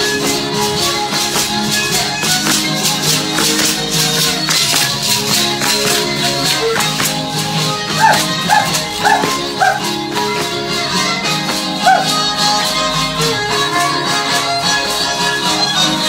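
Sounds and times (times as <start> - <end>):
shaken rattles beat: 0.0 - 13.6
traditional dance melody: 0.0 - 16.0
dog barking: 8.0 - 9.8, 11.8 - 12.1.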